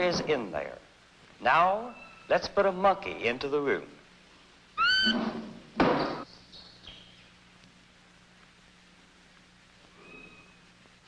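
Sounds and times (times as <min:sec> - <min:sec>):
monkey high rising call: 0:04.8 - 0:05.3.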